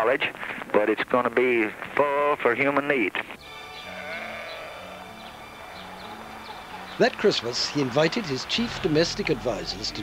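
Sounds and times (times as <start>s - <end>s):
livestock calling: 3.4s - 9.7s.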